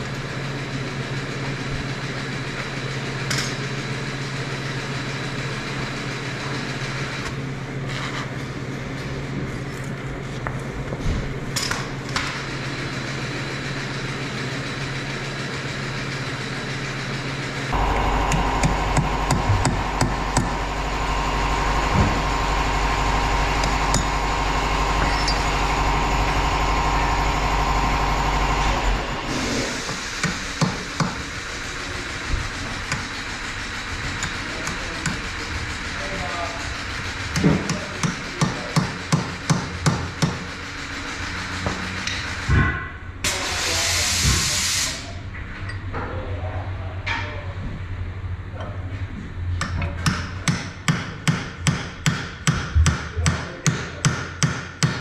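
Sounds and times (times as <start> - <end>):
arc welder buzzing and crackling: 0.0 - 10.0, 11.4 - 42.6.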